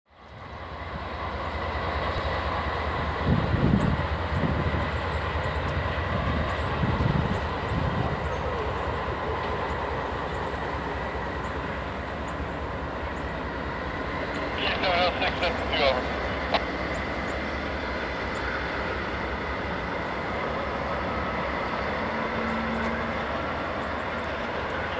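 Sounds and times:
diesel locomotive engine rumble: 0.1 - 24.9.

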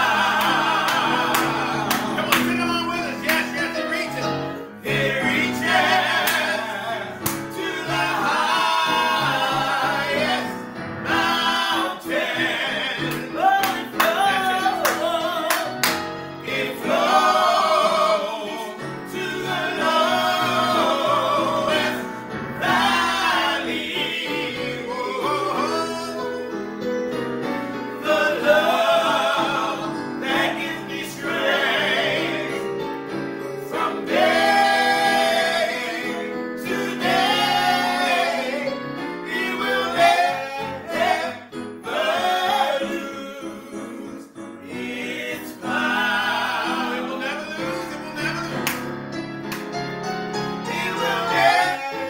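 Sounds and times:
man and woman singing gospel: 0.0 - 26.6, 33.5 - 48.6, 50.5 - 52.0
musical accompaniment: 0.0 - 52.0.

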